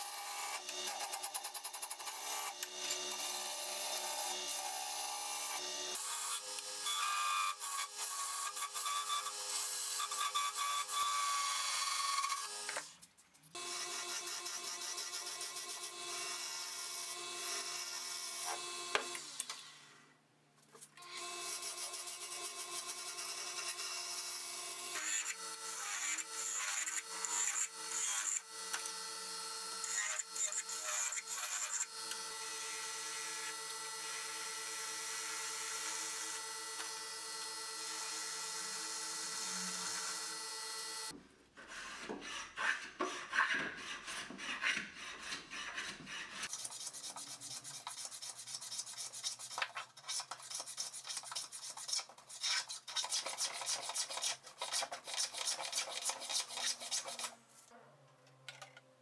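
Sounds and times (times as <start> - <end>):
hand saw cutting wood: 29.8 - 34.4, 41.0 - 57.4.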